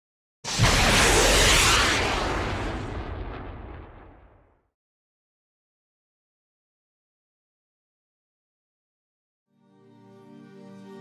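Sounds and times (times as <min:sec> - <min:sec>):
deep rumble: 0:00.6 - 0:04.5.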